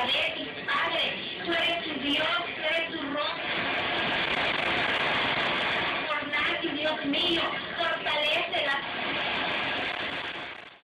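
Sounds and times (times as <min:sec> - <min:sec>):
steady rushing noise: 0:00.3 - 0:10.8.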